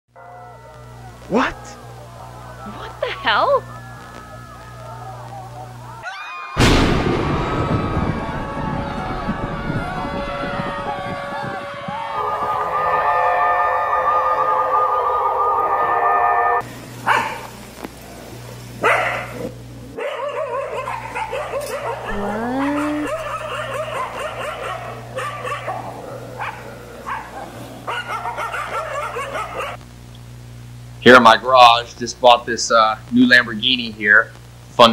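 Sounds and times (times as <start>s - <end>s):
low steady hum: 0.2s - 6.0s, 21.8s - 34.9s
loud boom into rumble: 6.6s - 11.6s
dogs barking and yelping: 17.0s - 17.5s, 18.8s - 29.8s.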